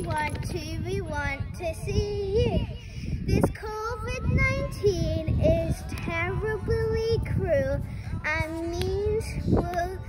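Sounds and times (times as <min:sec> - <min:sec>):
young girl singing: 0:00.0 - 0:10.0.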